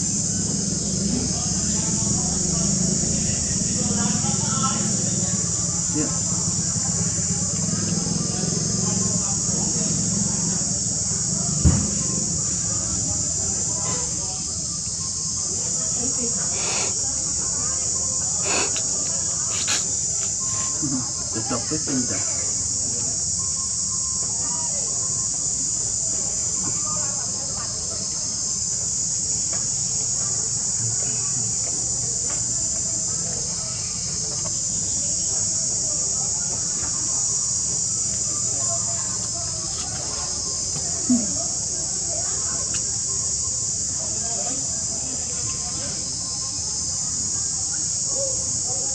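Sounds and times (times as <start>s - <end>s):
high-pitched insect chorus: 0.0s - 48.9s.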